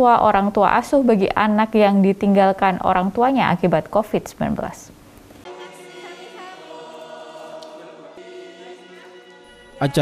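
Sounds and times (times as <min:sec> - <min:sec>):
choir-like held tones music: 0:05.4 - 0:10.0.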